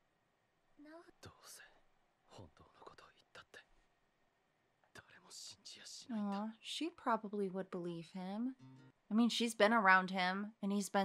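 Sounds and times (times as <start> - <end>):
person speaking softly: 0.8 - 3.6, 5.0 - 6.9.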